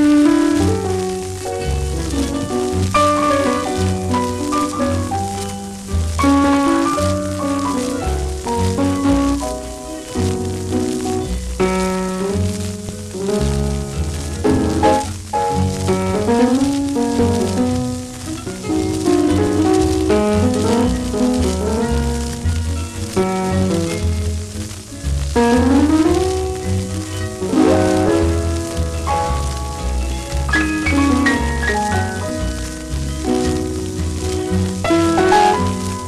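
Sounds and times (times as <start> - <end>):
old record music with guitar: 0.0 - 36.0
record surface crackle: 0.0 - 36.0.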